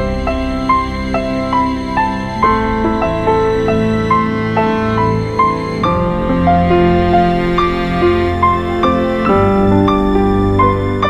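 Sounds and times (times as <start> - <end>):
calm piano music: 0.0 - 11.0.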